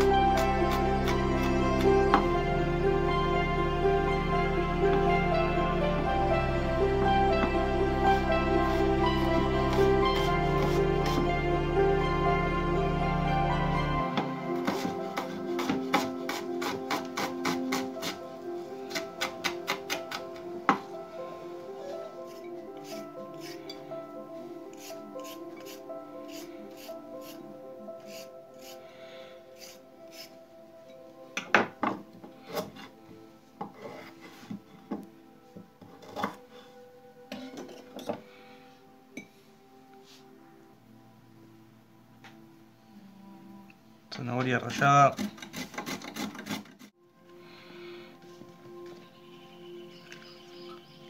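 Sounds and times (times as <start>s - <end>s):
soft background music: 0.0s - 51.0s.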